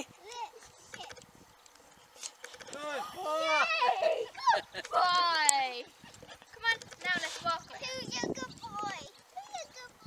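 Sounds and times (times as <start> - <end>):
people laughing: 2.9 - 5.2.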